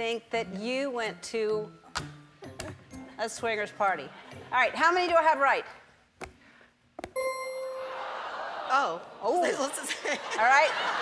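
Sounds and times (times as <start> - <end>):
game show bell ding: 7.2 - 8.6.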